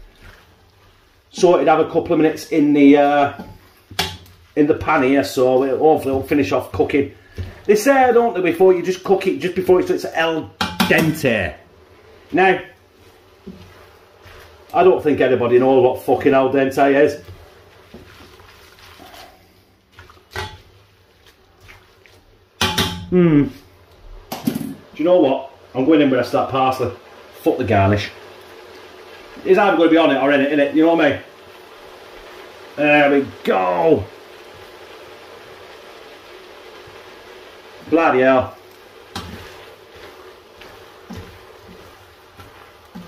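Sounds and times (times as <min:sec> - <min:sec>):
utensil stirring spaghetti in pot: 0:00.0 - 0:23.0, 0:23.6 - 0:43.0
low steady hiss: 0:00.0 - 0:43.0
utensil knocking against pan: 0:10.6 - 0:11.2, 0:22.6 - 0:23.1
tongs tossing spaghetti: 0:12.0 - 0:22.3, 0:34.3 - 0:43.0
clatter in pot: 0:24.3 - 0:24.8.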